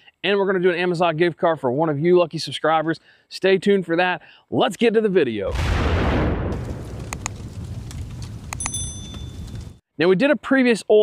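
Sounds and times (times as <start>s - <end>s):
high bell ding: 8.6s - 9.4s.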